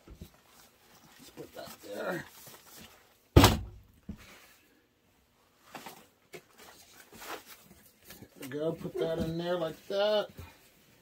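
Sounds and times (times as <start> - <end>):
crumpled paper rustling: 0.0 - 3.3, 5.6 - 10.2
thump against plastic tote: 3.4 - 3.8.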